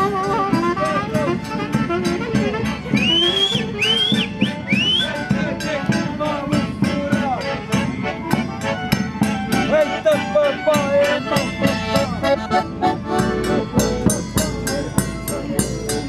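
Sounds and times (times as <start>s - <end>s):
accordion: 0.0s - 16.0s
fiddle: 0.0s - 16.0s.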